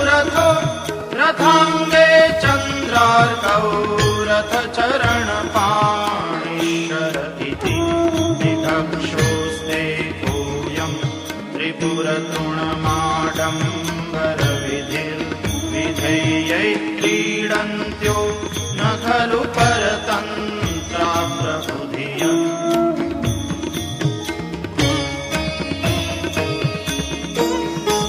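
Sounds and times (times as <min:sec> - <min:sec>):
hand drum strokes: 0:00.0 - 0:28.0.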